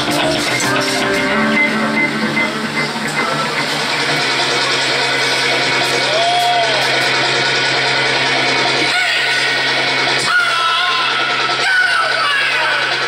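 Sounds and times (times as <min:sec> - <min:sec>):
rock band playing: 0:00.0 - 0:13.0.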